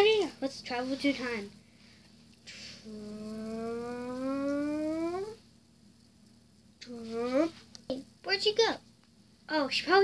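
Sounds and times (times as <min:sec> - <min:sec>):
breathy hiss: 0:00.8 - 0:05.4
child humming rising tone: 0:02.8 - 0:05.4.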